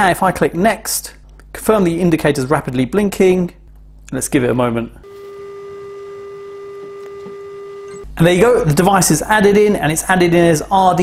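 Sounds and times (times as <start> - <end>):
steady tone: 5.0 - 8.1.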